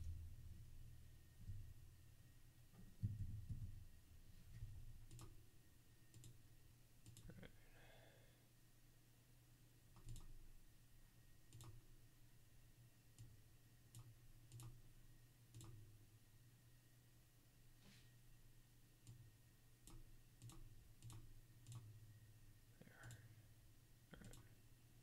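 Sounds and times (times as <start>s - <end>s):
low steady hum: 0.0s - 25.0s
faint computer mouse clicks: 5.1s - 5.4s, 6.1s - 6.4s, 7.0s - 7.3s, 10.0s - 10.4s, 11.5s - 11.8s, 13.9s - 14.8s, 15.5s - 15.8s, 19.9s - 21.9s, 23.0s - 23.3s, 24.1s - 24.5s.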